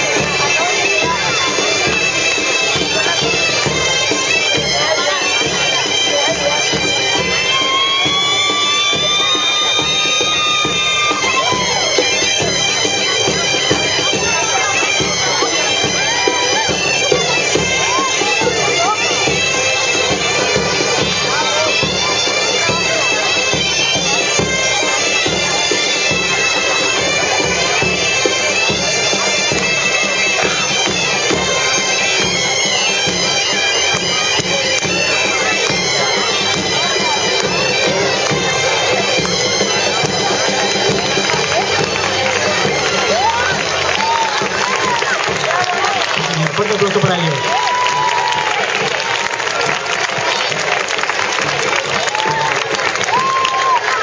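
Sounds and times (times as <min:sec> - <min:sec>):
bagpipes playing: 0:00.0 - 0:54.0
drum beating: 0:00.0 - 0:54.0.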